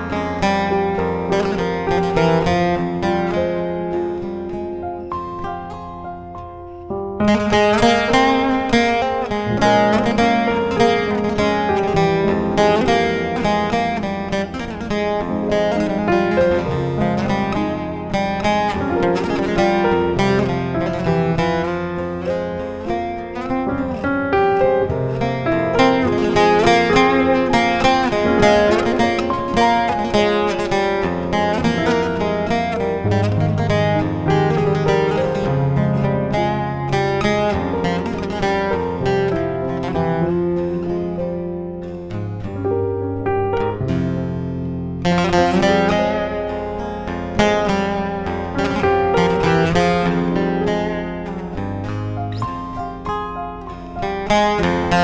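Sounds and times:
keyboard piano chords and bass: 0.0 - 55.0
plucked lute melody: 0.0 - 55.0.

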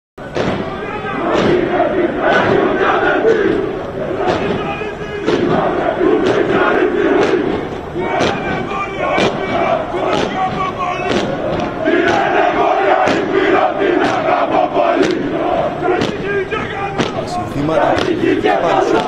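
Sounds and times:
marching beat: 0.2 - 19.0
men chanting in unison: 0.6 - 19.0.

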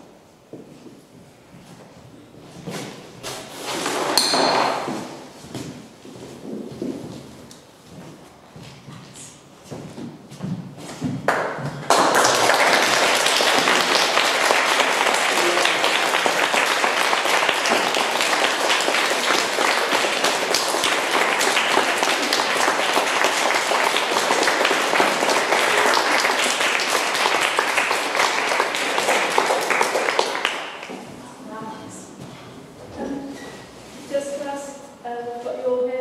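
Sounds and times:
audience applauding: 11.3 - 31.1.

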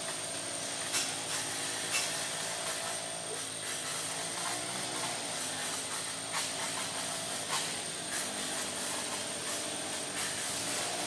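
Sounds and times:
continuous hiss: 0.0 - 11.0.

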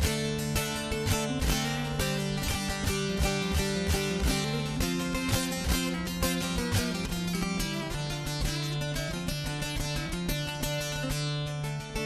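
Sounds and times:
long-necked lute strummed and plucked: 0.0 - 12.0.

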